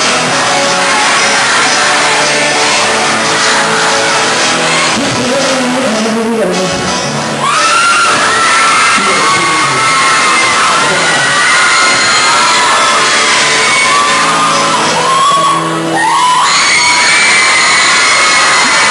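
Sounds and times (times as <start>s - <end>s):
audience screaming and whooping: 0.0s - 5.2s, 7.2s - 18.9s
acoustic guitar: 0.0s - 18.9s
man singing: 4.9s - 6.9s.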